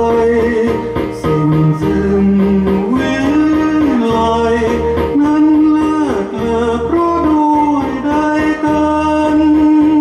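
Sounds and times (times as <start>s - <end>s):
karaoke backing track with drums: 0.0s - 10.0s
man singing into a microphone: 0.0s - 10.0s.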